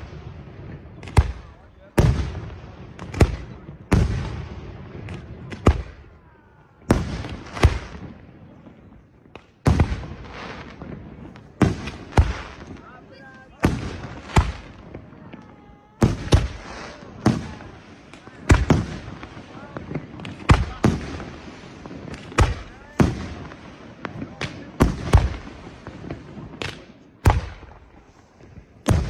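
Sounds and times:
firework crackle: 0.0s - 29.0s.

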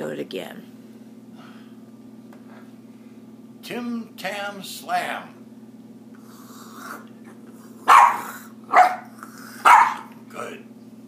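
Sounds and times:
dog barking: 7.9s - 10.1s.

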